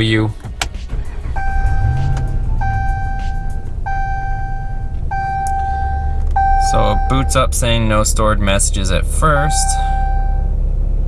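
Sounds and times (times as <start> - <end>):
low rumble: 0.3 - 11.0
dashboard warning chime: 1.2 - 7.9, 9.2 - 10.6.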